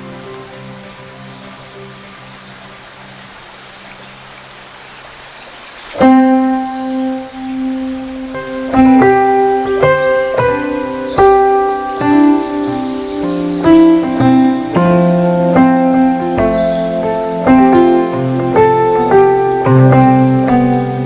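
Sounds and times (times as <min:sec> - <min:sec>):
plucked guitar-like instrumental music: 0:00.0 - 0:02.2, 0:06.0 - 0:21.0.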